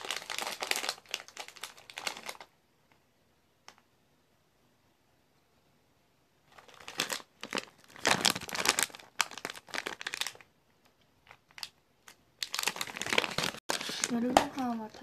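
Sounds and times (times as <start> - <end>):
plastic bag crinkling: 0.0 - 2.5, 6.5 - 10.5, 11.2 - 15.0.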